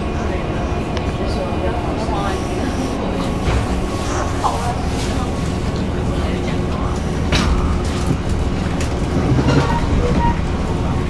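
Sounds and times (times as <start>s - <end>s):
train interior hum and rumble: 0.0s - 11.0s.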